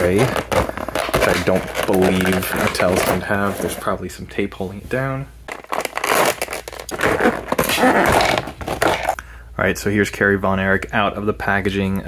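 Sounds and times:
plastic bag crinkling: 0.0 - 3.8, 5.5 - 9.2.

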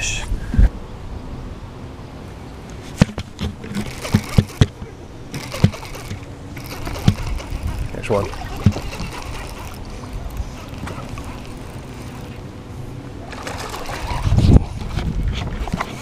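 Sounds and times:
wind: 0.0 - 16.0
sharp knocks and thumps: 2.9 - 4.9
water: 3.5 - 16.0.

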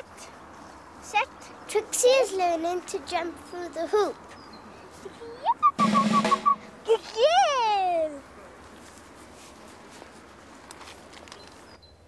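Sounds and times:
comic drum roll: 5.8 - 6.8
sliding whistle-like note: 5.8 - 6.8.

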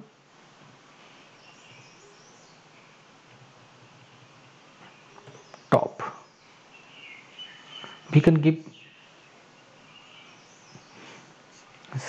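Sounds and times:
bird chirping faintly: 0.9 - 11.9.

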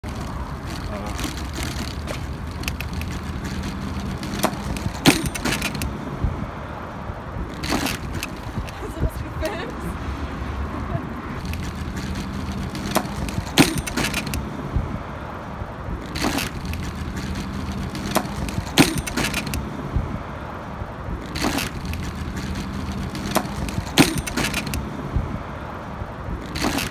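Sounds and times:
bicycles knocking over bumps: 0.0 - 6.5, 7.3 - 9.7, 11.4 - 15.0, 15.8 - 20.2, 21.0 - 25.4, 26.2 - 26.9
street traffic hum: 0.0 - 26.9.

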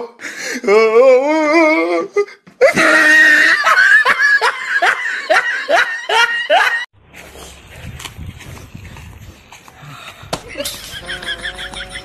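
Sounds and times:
person laughing hard: 2.6 - 6.9, 10.4 - 12.0.

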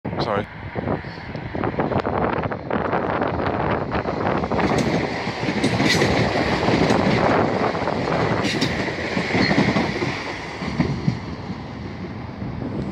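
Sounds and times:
train wheels rushing on rail: 0.2 - 12.9
wheels clicking over rail joints: 4.5 - 11.6.

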